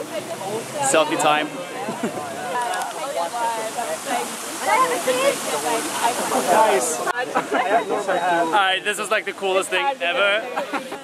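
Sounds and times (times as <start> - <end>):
group of people chatting: 0.0 - 11.0.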